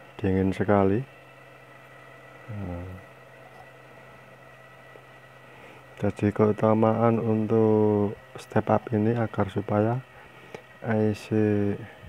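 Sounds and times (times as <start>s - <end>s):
fan low hum: 0.0s - 12.0s.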